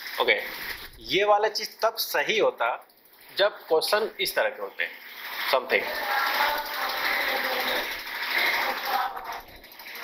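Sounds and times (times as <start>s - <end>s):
marker squeaking on whiteboard: 0.4s - 1.0s, 4.9s - 9.3s.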